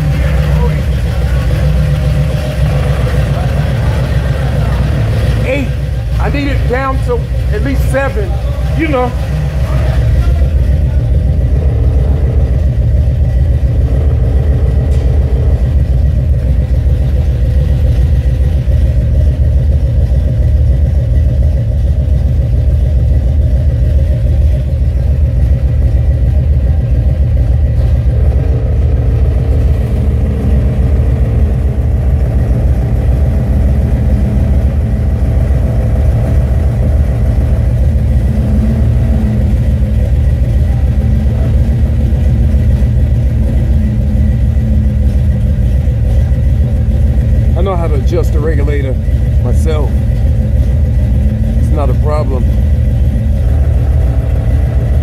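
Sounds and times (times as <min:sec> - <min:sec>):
car engine idling loudly: 0:00.0 - 0:55.0.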